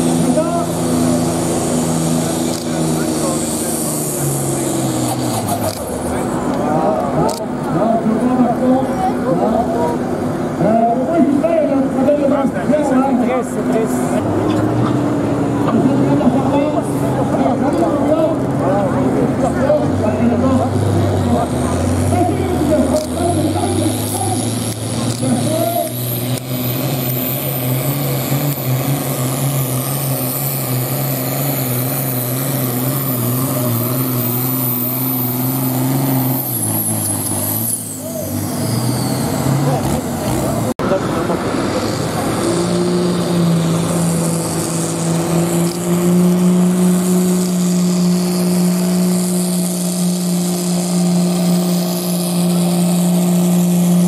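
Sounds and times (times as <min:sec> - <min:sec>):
diesel tractor engine under load: 0:00.0 - 0:54.0.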